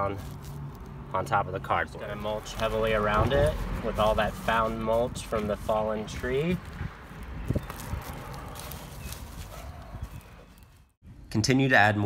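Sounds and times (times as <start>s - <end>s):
hands rustling mulch and leaves: 0.0s - 1.0s, 2.0s - 11.0s.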